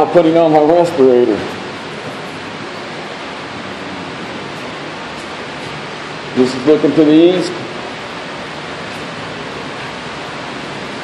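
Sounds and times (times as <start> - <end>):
air filtration machines running: 0.0 - 11.0.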